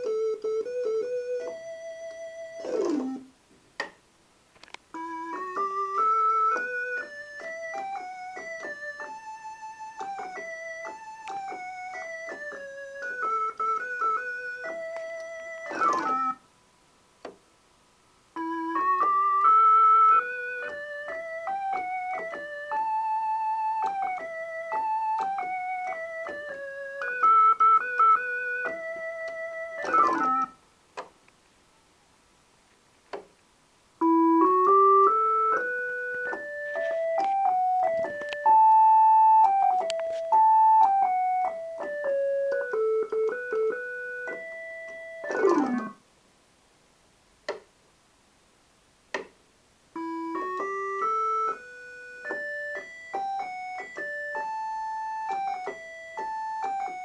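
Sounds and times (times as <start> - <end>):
combo organ melody: 0.0 - 3.4, 4.9 - 16.5, 18.3 - 30.6, 34.0 - 46.0, 50.0 - 57.0.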